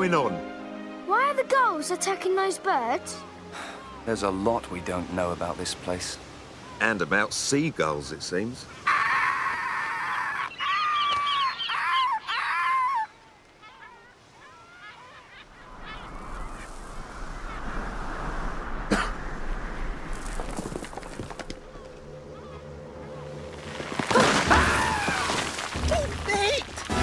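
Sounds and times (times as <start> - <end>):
rushing noise: 15.6 - 22.2.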